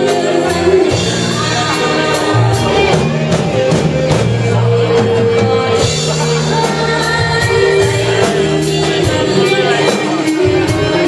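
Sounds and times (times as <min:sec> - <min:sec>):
drums keeping a steady beat: 0:00.0 - 0:11.0
electric bass: 0:00.0 - 0:11.0
electric guitar: 0:00.0 - 0:11.0
woman singing lead: 0:00.0 - 0:11.0.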